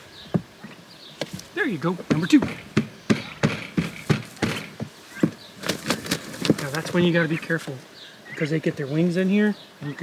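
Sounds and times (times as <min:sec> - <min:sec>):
young turkeys making sharp sounds: 0:00.0 - 0:10.0.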